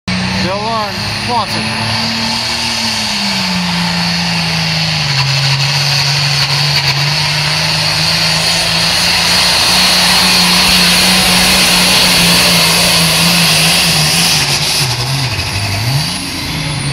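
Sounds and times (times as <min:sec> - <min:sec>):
tractor diesel engine under load: 0:00.1 - 0:16.9.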